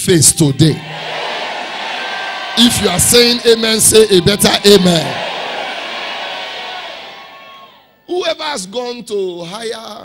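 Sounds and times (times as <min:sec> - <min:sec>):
congregation shouting and cheering: 0:00.0 - 0:08.6.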